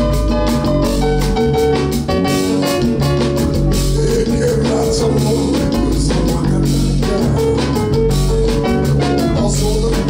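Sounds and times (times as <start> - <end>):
bass guitar: 0.0 - 10.0
drum kit steady beat: 0.0 - 10.0
electric guitar: 0.0 - 10.0.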